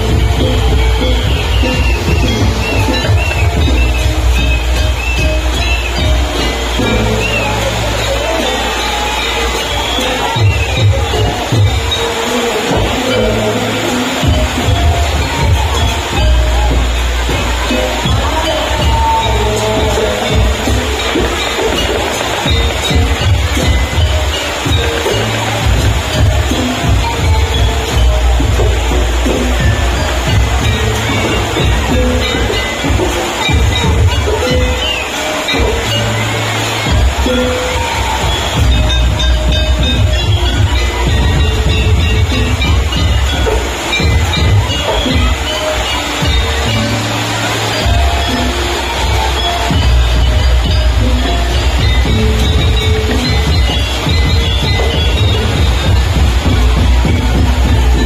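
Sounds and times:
gamelan music over loudspeakers: 0.0s - 58.0s
heavy low drum beats: 0.0s - 58.0s.

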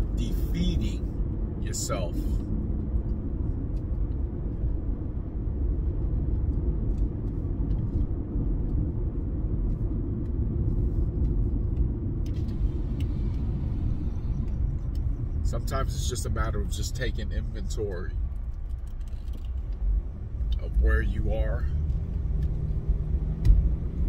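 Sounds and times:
car cabin rumble: 0.0s - 24.0s.

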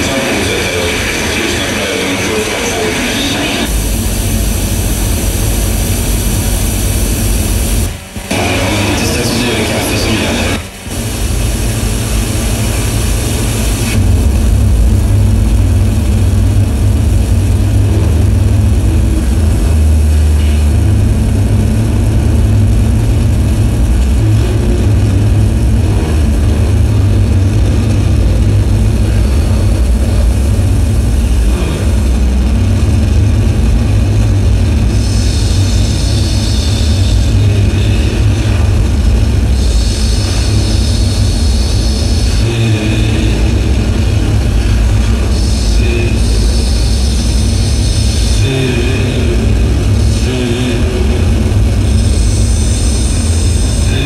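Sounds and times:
harsh electronic noise music: 0.0s - 54.0s
heavy low rumble: 0.0s - 54.0s.

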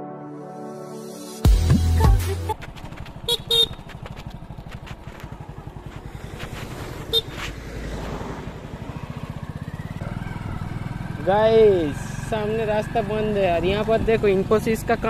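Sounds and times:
motorcycle engine running: 1.5s - 15.0s.

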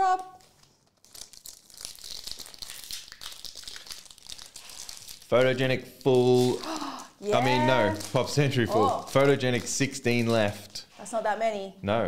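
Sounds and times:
foil wrapper crinkling: 0.0s - 10.8s.

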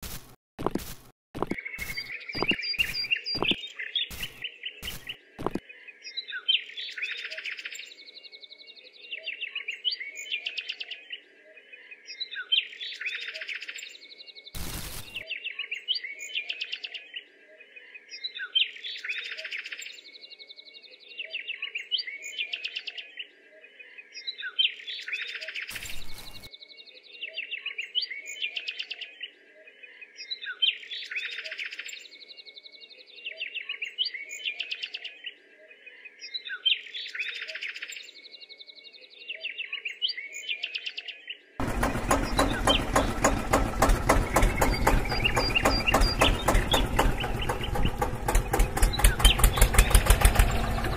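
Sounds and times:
birds chirping and singing: 1.4s - 50.9s.

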